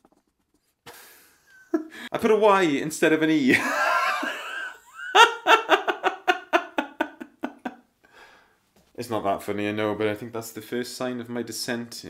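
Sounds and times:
man laughing heartily: 0.9 - 2.1, 3.5 - 7.8
faint breath: 8.0 - 8.7.

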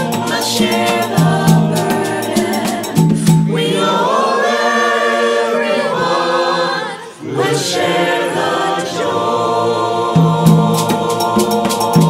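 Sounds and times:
mixed choir singing a cappella: 0.0 - 12.0.

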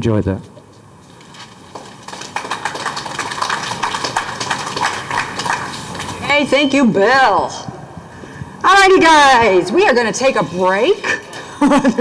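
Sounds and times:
audience clapping: 1.2 - 6.2.

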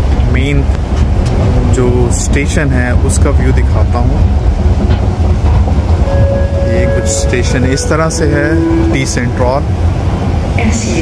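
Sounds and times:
loud low rumble: 0.0 - 11.0.

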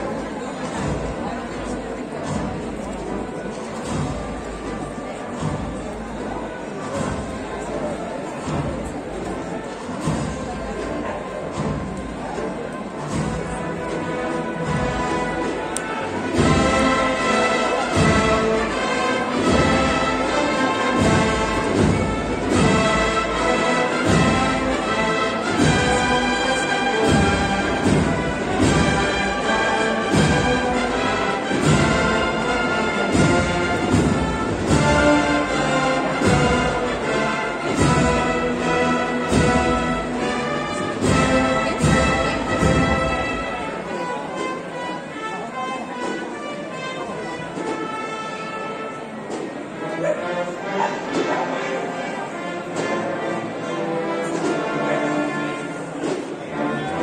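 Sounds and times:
processional band playing march: 0.0 - 57.0
steady drum beat: 0.2 - 43.6.

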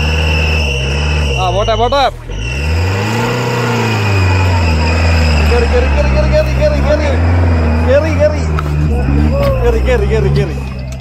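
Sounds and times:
engine revving under load: 0.0 - 11.0.

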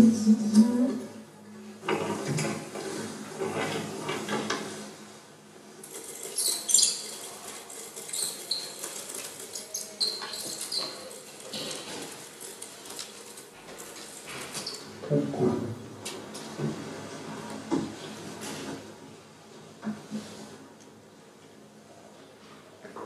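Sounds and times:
crackling and rustling noise: 1.8 - 21.6
high squeaks: 6.1 - 11.9.

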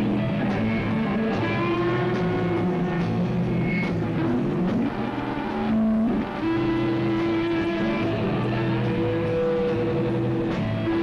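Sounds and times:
distorted electric guitars droning: 0.0 - 11.0.

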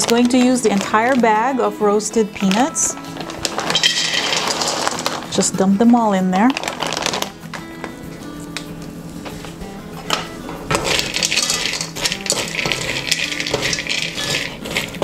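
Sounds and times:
spoon stirring peanuts in wok: 0.0 - 5.7, 6.5 - 7.2, 10.7 - 15.0
background music: 0.0 - 15.0.

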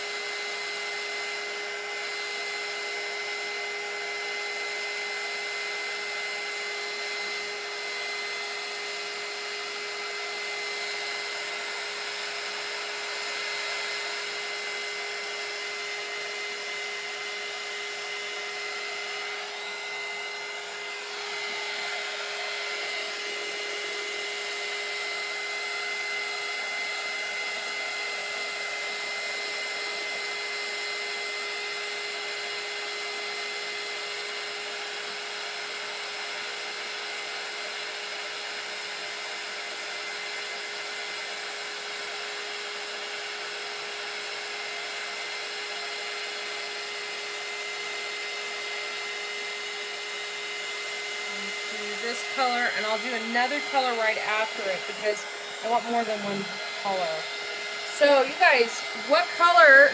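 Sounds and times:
heat gun blowing hiss and whine: 0.0 - 59.9.

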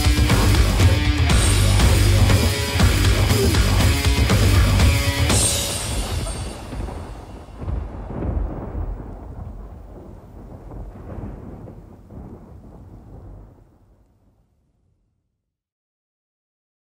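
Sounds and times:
deep rumbling noise: 0.0 - 13.8.

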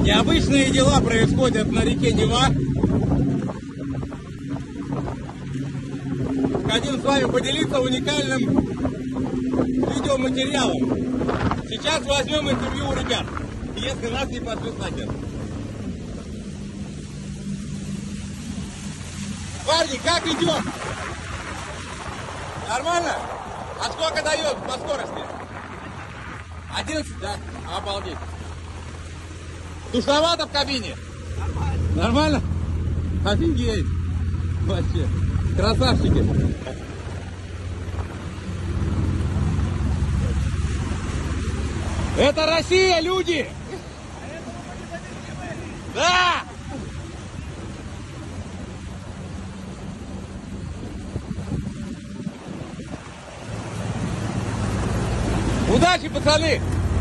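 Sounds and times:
boat engine running: 0.0 - 57.0
water rushing: 0.0 - 57.0
wind: 0.0 - 57.0.

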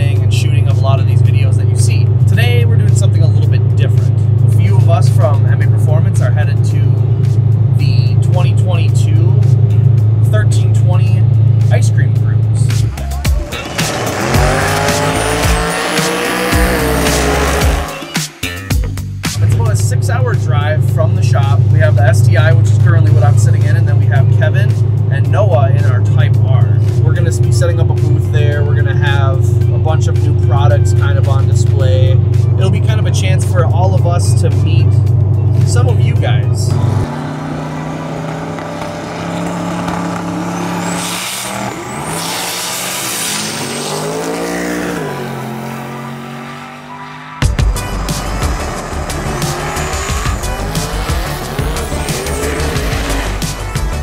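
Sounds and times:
loud low engine rumble: 0.0 - 18.0, 19.4 - 54.0
engine revving: 0.0 - 54.0
music with singing and heavy bass: 0.0 - 54.0
tire squeal: 36.8 - 53.8.

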